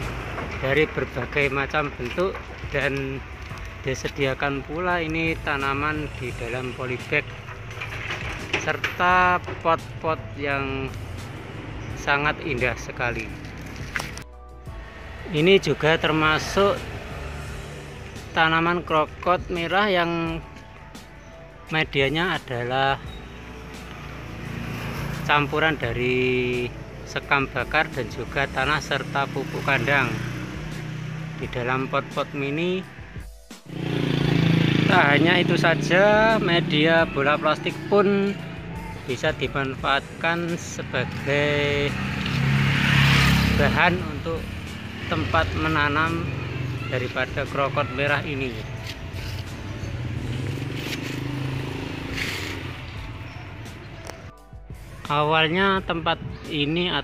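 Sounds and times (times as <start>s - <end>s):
vehicle engine hum: 0.0s - 19.7s, 23.0s - 54.3s.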